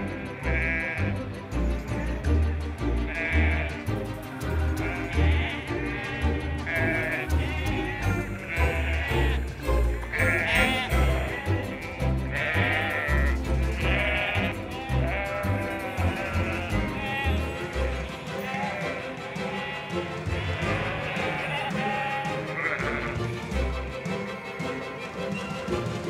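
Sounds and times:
sheep bleating: 0.0 - 1.2, 1.8 - 23.4.

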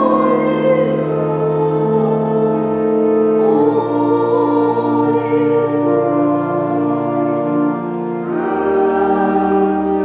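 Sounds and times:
voices singing in harmony: 0.0 - 10.0.

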